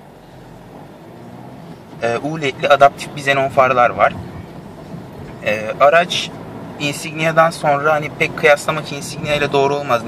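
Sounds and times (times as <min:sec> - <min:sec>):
diesel car engine from inside: 0:00.0 - 0:10.0.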